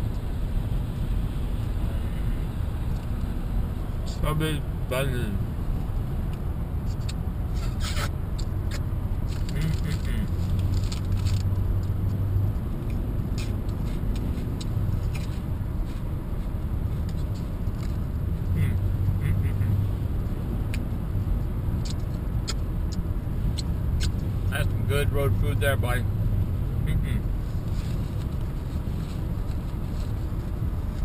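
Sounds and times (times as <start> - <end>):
car cabin road rumble: 0.0 - 31.0
person chewing crunchy snacks: 9.4 - 11.4.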